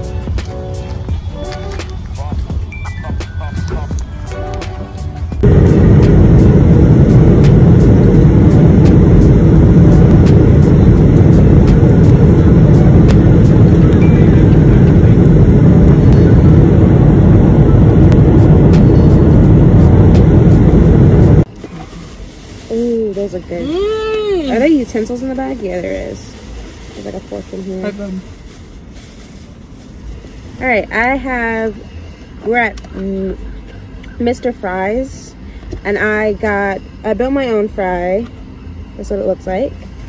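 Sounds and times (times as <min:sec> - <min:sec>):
airliner cabin rumble: 0:03.7 - 0:32.2.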